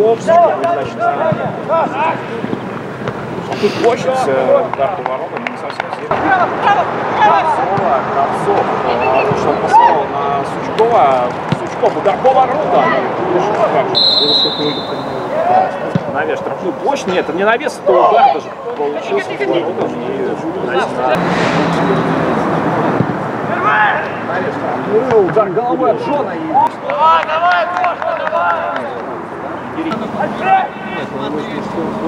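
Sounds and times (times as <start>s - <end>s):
voices: 0.0s - 32.0s
referee's whistle blast: 13.9s - 15.3s
men shouting calls: 13.9s - 15.9s.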